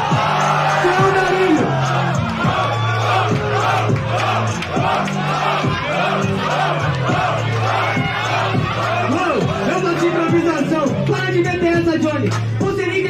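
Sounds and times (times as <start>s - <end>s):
crowd cheering and shouting: 0.0s - 13.0s
hip-hop beat with bass line: 0.0s - 13.0s
rapping: 0.7s - 13.0s.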